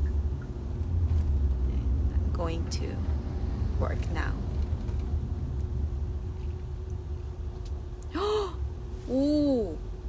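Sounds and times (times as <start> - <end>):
car road rumble: 0.0 - 10.0
woman saying ooh: 9.1 - 9.8.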